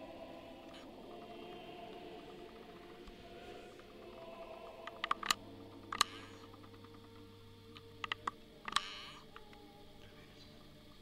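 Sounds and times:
low hum: 0.0s - 11.0s
rustling hiss: 0.0s - 11.0s
sharp clicks: 0.7s - 9.6s.

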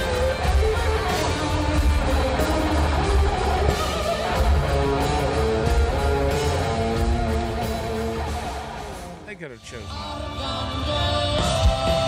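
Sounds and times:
electric guitar riff: 0.0s - 12.0s
heavy rock band playing: 0.0s - 12.0s.

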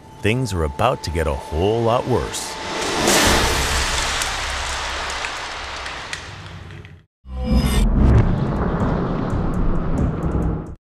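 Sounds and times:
swoosh: 1.7s - 5.8s.

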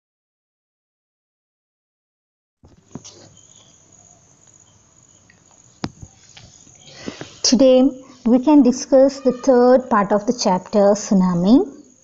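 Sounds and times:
high-pitched chirring hiss: 2.7s - 12.0s.

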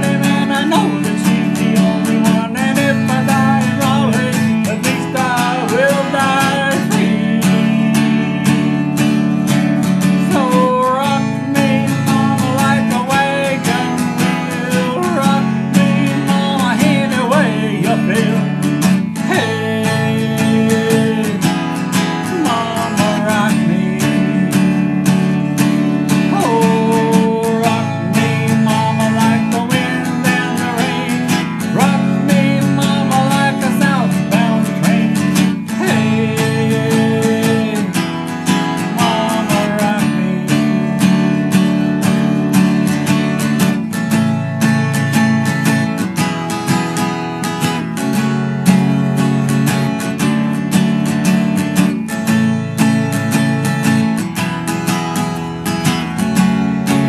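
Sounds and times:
acoustic guitar strumming chords: 0.0s - 57.0s.

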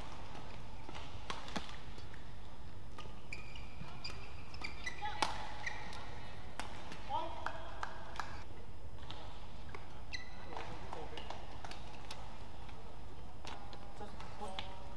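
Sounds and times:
rackets hitting shuttlecock: 0.0s - 2.3s, 2.9s - 8.4s
shoes squeaking on court floor: 0.0s - 7.1s, 9.0s - 12.3s.

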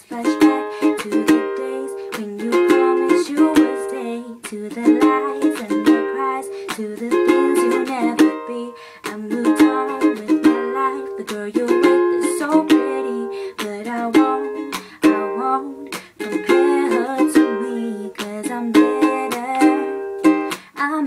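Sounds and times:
ukulele strummed: 0.0s - 21.0s
woman singing: 0.0s - 21.0s.

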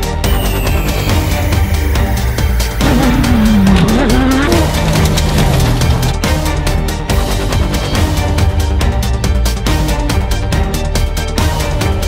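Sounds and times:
loud music track: 0.0s - 12.0s
race car engine revving: 2.8s - 6.3s.

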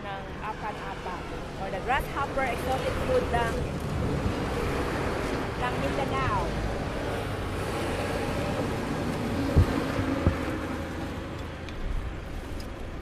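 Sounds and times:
highway traffic rumble: 0.0s - 13.0s.

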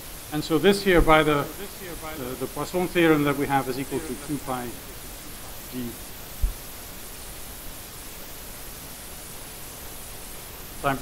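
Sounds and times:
steady background hiss: 0.0s - 11.0s
man talking: 0.3s - 4.8s, 5.7s - 6.0s.

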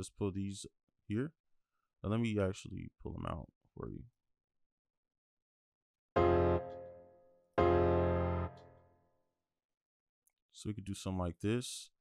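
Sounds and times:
sustained keyboard chord: 6.2s - 8.8s.

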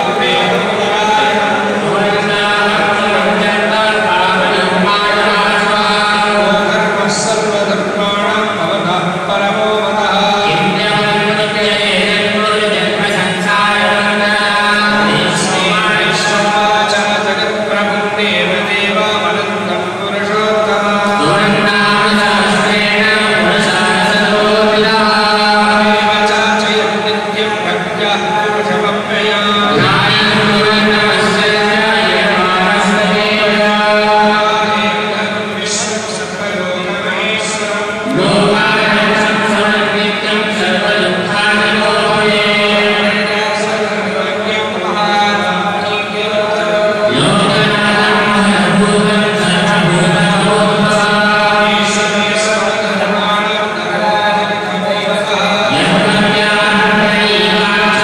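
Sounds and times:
men chanting mantras: 0.0s - 58.0s
men chanting into microphones: 36.6s - 58.0s.

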